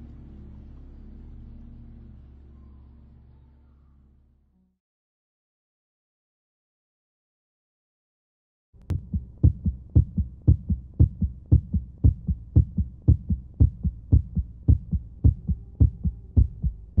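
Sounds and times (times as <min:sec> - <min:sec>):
heartbeat double thump: 0:08.9 - 0:17.0.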